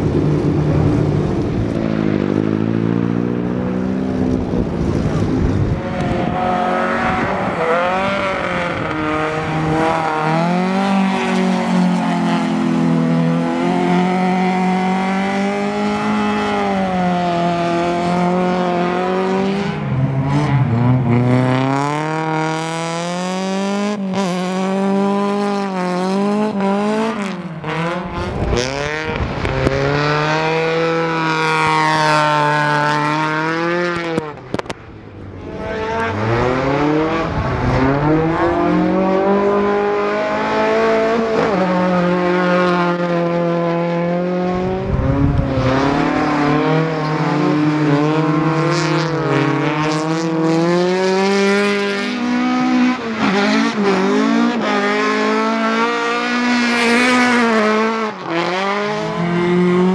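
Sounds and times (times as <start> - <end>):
racing car engines revving: 0.0 - 59.9.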